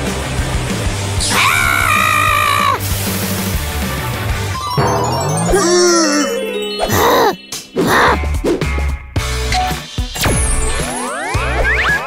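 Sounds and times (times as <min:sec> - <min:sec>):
background music: 0:00.0 - 0:12.0
cartoon woman screaming: 0:01.2 - 0:02.8, 0:05.5 - 0:08.2.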